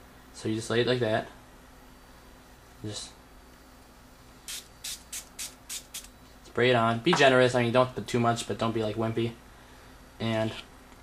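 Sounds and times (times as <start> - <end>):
spray bottle short hisses: 4.5 - 6.1.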